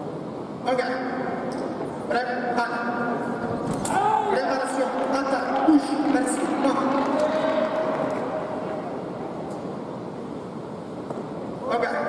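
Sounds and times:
hall noise: 1.8 - 11.7.

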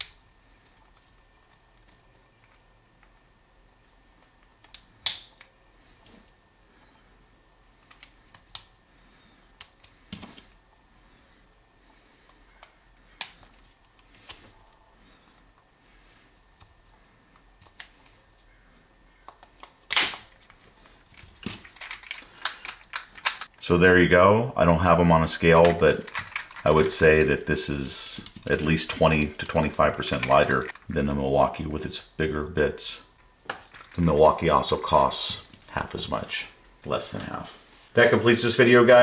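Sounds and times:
screwdriver bits clicking: 21.7 - 23.5, 25.6 - 26.9.

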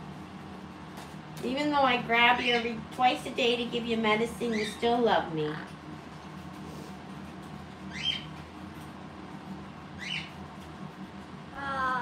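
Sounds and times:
parrot squeaking: 4.4 - 4.9, 7.9 - 8.3, 10.0 - 10.4.

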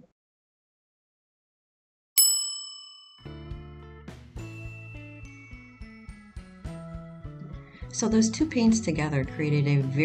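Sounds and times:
bright bell ding: 2.2 - 3.6.

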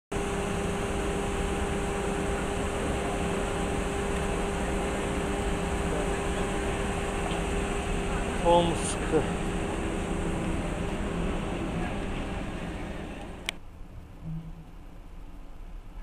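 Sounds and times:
train mechanical hum with whine: 0.1 - 16.0.

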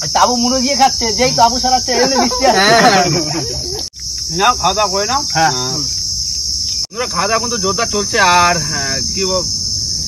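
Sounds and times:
man talking: 0.0 - 3.6, 6.9 - 9.5
insect chorus drone: 0.0 - 10.0.

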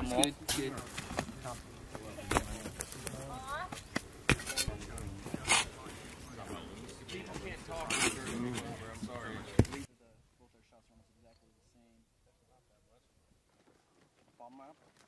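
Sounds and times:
spade digging stony soil: 4.3 - 5.8, 7.8 - 8.7.

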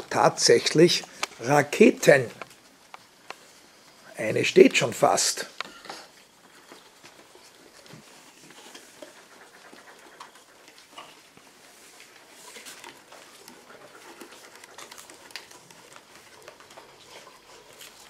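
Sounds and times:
pencils and scissors clicking: 12.1 - 18.0.

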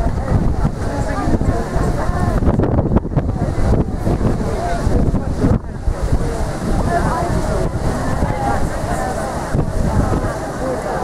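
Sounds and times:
indistinct voices talking: 0.0 - 11.0
wind buffeting microphone: 0.0 - 11.0.

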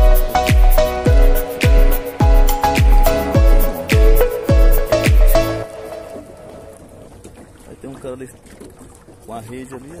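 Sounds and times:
water noise: 0.0 - 10.0.

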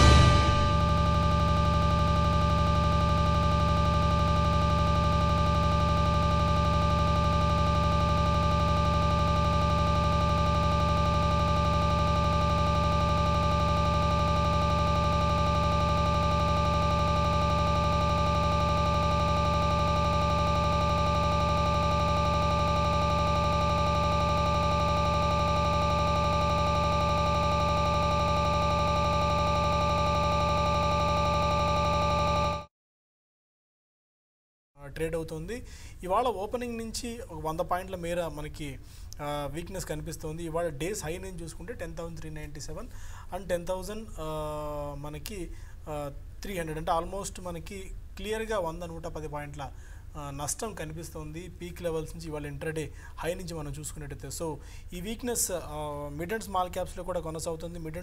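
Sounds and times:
electronic drone: 0.0 - 32.7
low hum: 0.0 - 32.7.

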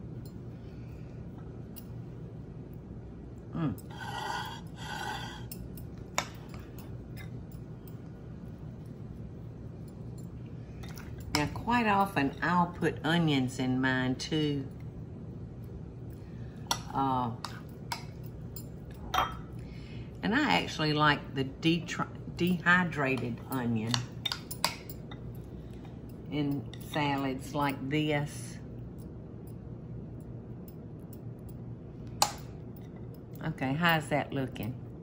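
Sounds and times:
metal spoon clinking dishes: 3.9 - 7.4, 16.7 - 19.6, 23.2 - 25.3
metal spoon clinking on glass: 5.4 - 8.0, 23.2 - 25.3
woman talking: 11.4 - 14.8, 16.8 - 17.6, 20.2 - 24.2, 26.3 - 28.6, 33.4 - 34.8.

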